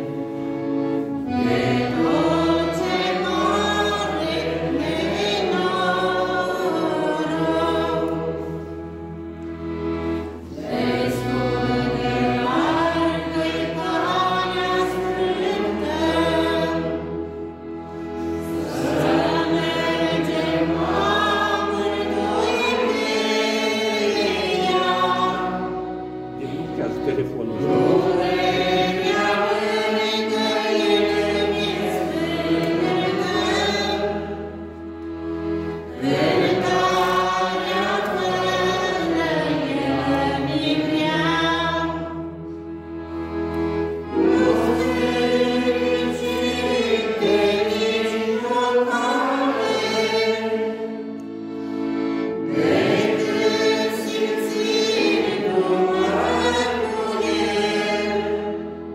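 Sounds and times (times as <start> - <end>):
congregation singing a hymn: 0.0 - 58.9.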